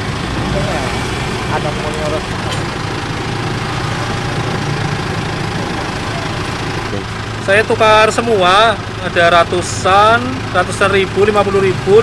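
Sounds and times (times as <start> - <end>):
vehicle engine idling: 0.0 - 12.0
faint voices: 5.2 - 7.1.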